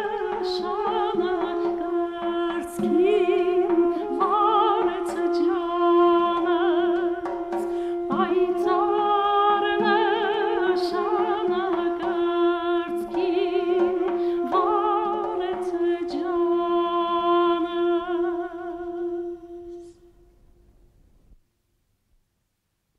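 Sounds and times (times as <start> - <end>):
woman singing folk song: 0.0 - 20.0
duduk drone note: 0.0 - 20.3
duduk melody with vibrato: 0.0 - 20.4.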